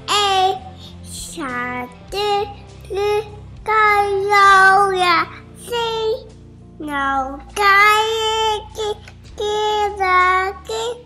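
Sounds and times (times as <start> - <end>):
toddler singing high notes: 1.2 - 11.0.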